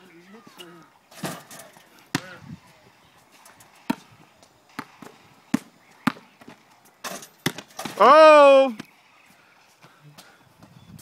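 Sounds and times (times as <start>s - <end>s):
basketball bouncing on concrete: 2.1s - 2.4s, 3.8s - 4.1s, 4.7s - 8.0s
basketball striking hoop: 7.1s - 8.0s.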